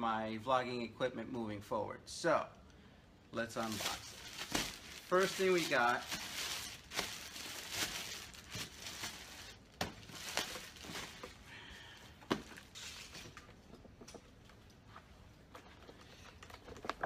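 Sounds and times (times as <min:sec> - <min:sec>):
plastic bag crinkling: 0:03.6 - 0:11.5.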